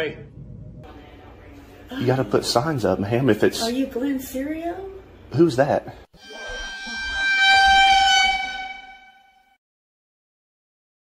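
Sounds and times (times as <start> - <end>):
steady horn-like tone: 6.2 - 9.6.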